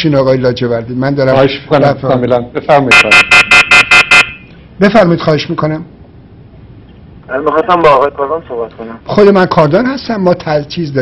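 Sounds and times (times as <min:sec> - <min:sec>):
telephone ringing electronic trill: 0:02.9 - 0:04.5.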